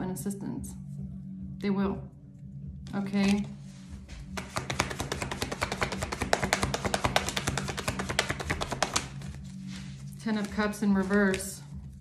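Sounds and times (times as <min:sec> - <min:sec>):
soft background music: 0:00.0 - 0:12.0
cards being shuffled: 0:03.0 - 0:12.0.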